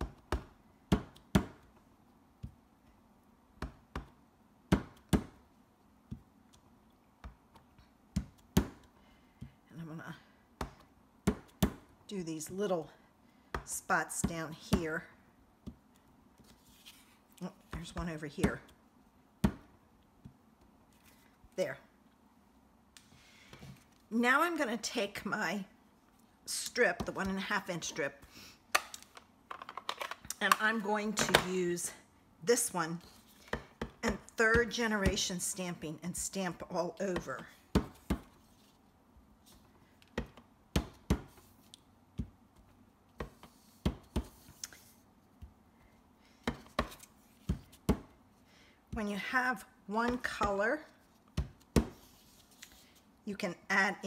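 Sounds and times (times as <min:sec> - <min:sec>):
soft handling noise: 0:15.8 - 0:18.0.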